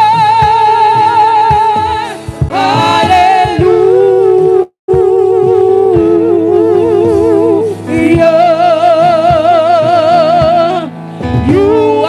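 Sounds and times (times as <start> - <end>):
gospel choir singing: 0.0 - 12.0
lead singer on microphone: 0.0 - 12.0.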